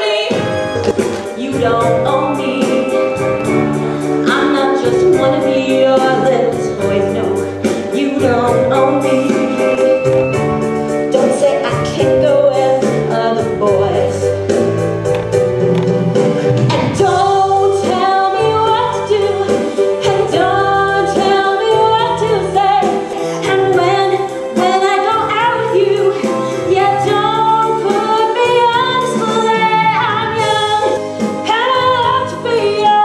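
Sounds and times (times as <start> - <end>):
instrumental accompaniment: 0.0 - 33.0
women singing in harmony: 1.4 - 10.3, 16.7 - 33.0.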